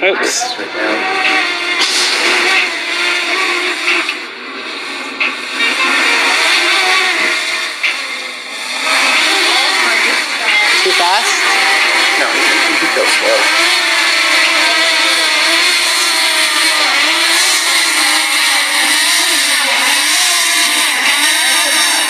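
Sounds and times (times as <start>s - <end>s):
drone propellers whining: 0.0s - 22.0s.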